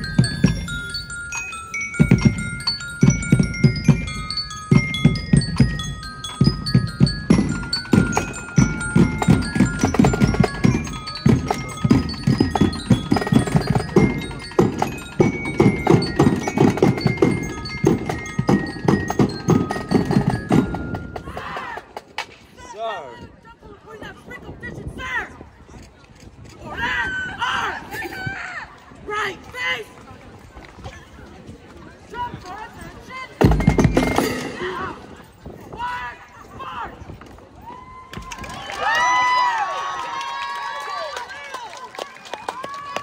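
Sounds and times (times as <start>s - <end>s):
glockenspiel melody: 0.0s - 21.5s, 33.4s - 34.9s
drums beating fast cadence: 1.9s - 22.1s.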